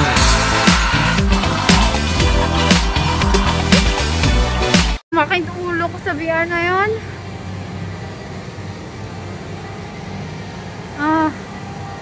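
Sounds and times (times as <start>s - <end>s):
hiss: 0.0s - 3.7s.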